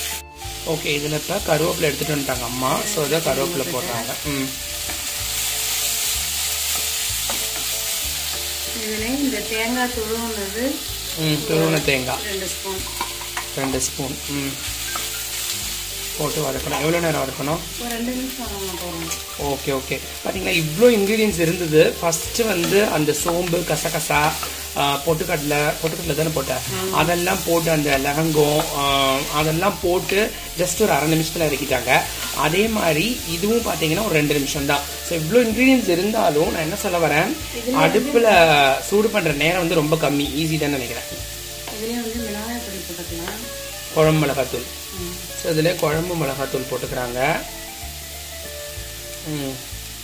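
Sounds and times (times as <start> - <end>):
food sizzling in oil: 0.0 - 50.0
person talking: 11.2 - 12.8, 24.8 - 40.8.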